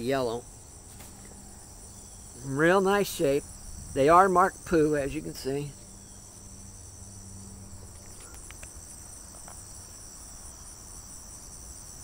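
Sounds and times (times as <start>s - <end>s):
insects chirring: 0.0s - 12.0s
faint clicks: 8.0s - 8.8s.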